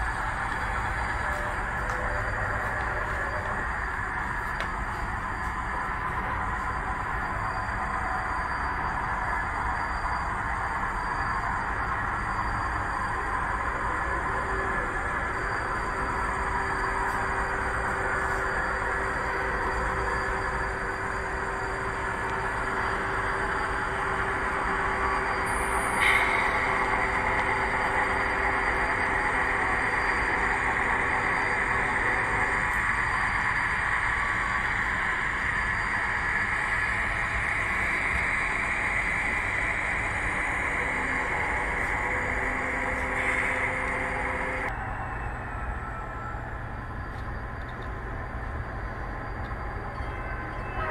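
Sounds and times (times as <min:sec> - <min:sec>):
hiss-like rolling sound: 0:00.0 - 0:44.8
model locomotive engine drone: 0:00.0 - 0:50.9.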